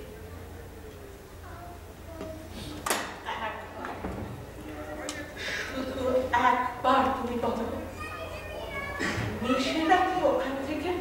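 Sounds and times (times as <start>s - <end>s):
steady low hum: 0.0s - 11.0s
woman speaking: 3.2s - 3.9s, 5.7s - 7.8s, 9.4s - 11.0s.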